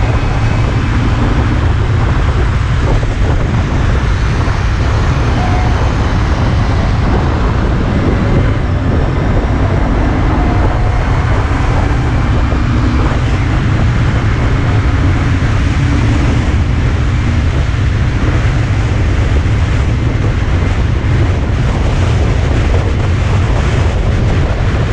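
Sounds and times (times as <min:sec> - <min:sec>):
road and engine noise: 0:00.0 - 0:24.9
wind buffeting microphone: 0:00.0 - 0:24.9.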